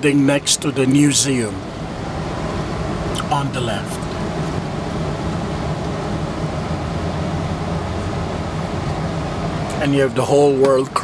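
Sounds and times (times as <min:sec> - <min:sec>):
car engine idling inside cabin: 0:00.0 - 0:11.0.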